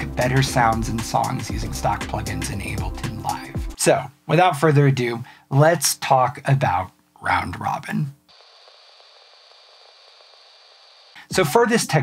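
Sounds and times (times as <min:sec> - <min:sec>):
faint static hiss: 0:00.0 - 0:12.0.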